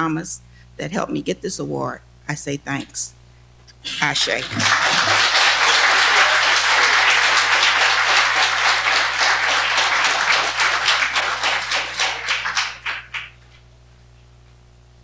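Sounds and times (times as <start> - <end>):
audience applauding: 3.9 - 13.4.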